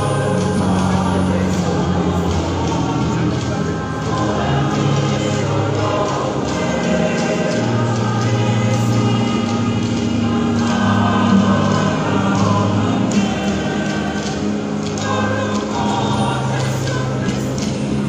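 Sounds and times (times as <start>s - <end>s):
choir singing a hymn: 0.0s - 18.0s.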